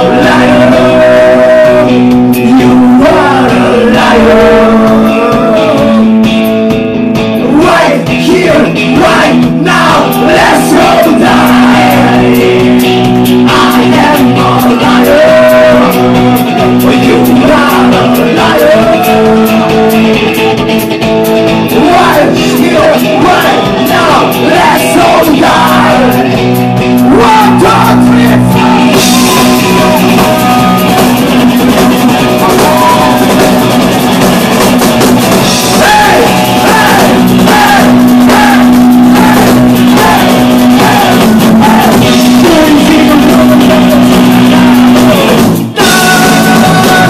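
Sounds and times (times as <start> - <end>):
shouted sung vocals: 0.0 - 6.1, 7.4 - 20.6, 21.7 - 26.5, 27.1 - 31.0, 32.1 - 33.6, 35.7 - 44.0, 45.8 - 47.0
punk rock band playing live: 0.0 - 47.0.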